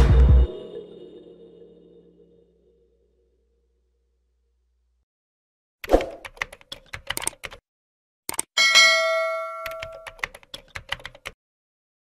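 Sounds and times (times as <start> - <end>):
keyboard typing clicks: 5.8 - 7.6, 8.3 - 8.5, 9.6 - 11.4
bright bell ding: 8.6 - 10.1.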